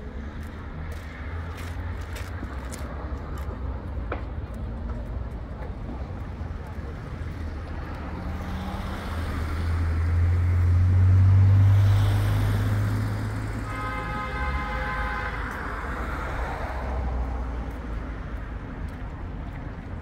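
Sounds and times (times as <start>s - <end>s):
motor vehicle passing: 6.4s - 13.6s.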